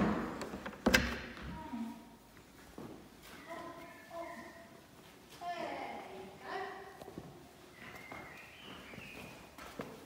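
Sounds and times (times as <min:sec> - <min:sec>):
footsteps on stone floor: 0:07.0 - 0:10.0.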